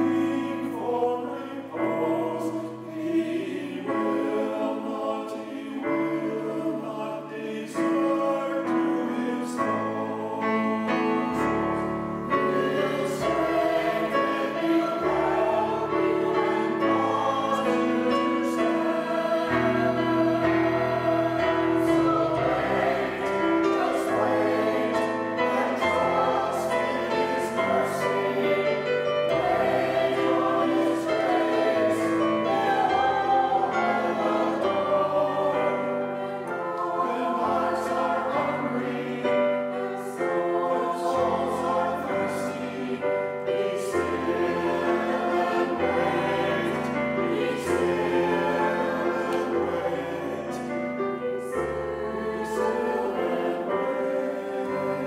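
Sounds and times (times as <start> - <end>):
church choir singing: 0.0 - 55.0.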